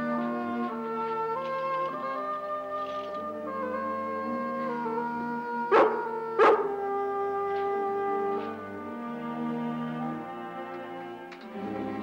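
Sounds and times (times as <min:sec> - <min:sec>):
orchestral background music: 0:00.0 - 0:12.0
dog barking: 0:05.7 - 0:06.8.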